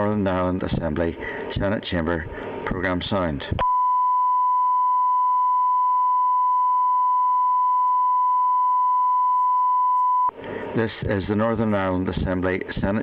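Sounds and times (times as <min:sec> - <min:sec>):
steady test tone: 0:03.6 - 0:10.4.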